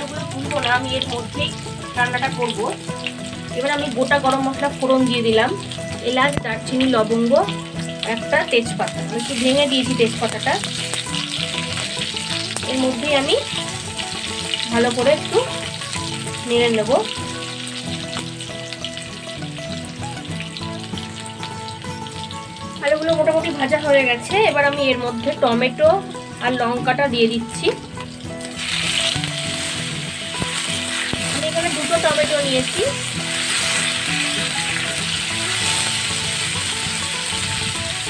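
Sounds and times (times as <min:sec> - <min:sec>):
oil sizzling with frying potatoes: 0:00.0 - 0:38.0
spatula stirring: 0:28.5 - 0:37.4.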